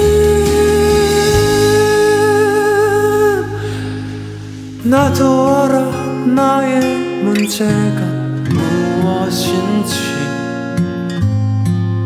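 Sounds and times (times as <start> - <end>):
man singing long note: 0.0 - 4.2
ballad backing track: 0.0 - 12.0.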